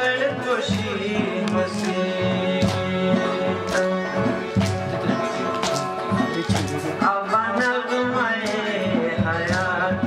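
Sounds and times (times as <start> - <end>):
harmonium: 0.0 - 10.0
man singing: 0.0 - 10.0
sitar: 0.0 - 10.0
steady percussion beat: 0.0 - 10.0.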